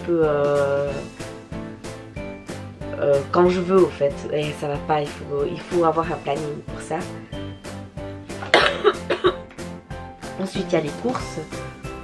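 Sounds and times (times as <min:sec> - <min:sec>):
background music: 0:00.0 - 0:12.0
woman coughing: 0:08.4 - 0:09.5.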